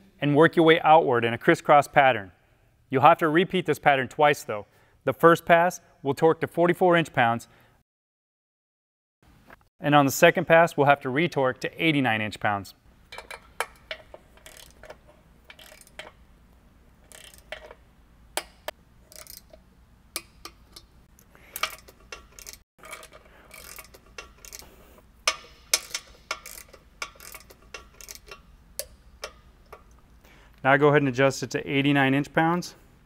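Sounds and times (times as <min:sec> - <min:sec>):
torque wrench ratcheting and clicking: 0:13.2 - 0:16.2, 0:17.0 - 0:17.8, 0:18.4 - 0:19.6, 0:21.5 - 0:30.0.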